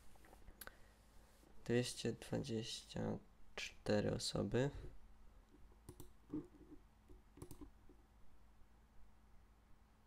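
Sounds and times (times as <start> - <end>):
faint computer mouse clicks: 5.8 - 6.2, 7.4 - 7.7.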